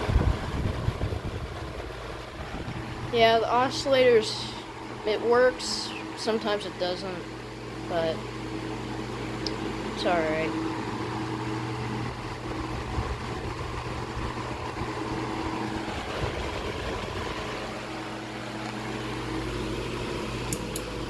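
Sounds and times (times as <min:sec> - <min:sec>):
desk fan running: 0:00.0 - 0:21.0
fan knob clicks: 0:20.4 - 0:21.0.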